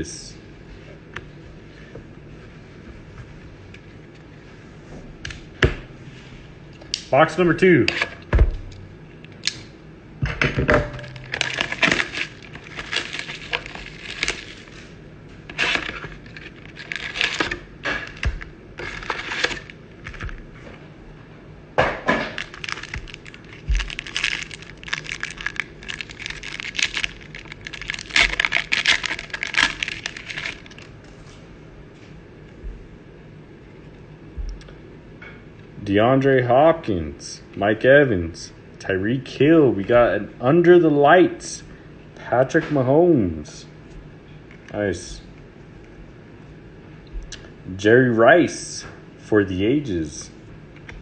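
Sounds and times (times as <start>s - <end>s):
pack tearing open: 11.0s - 14.8s, 15.5s - 20.4s, 22.3s - 30.9s
foil packs crinkling: 11.0s - 14.9s, 15.5s - 20.5s, 22.3s - 30.9s.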